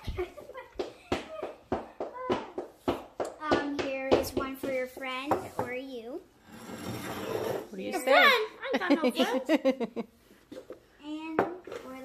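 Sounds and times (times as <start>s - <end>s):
child's voice: 3.4s - 6.3s, 11.0s - 12.0s.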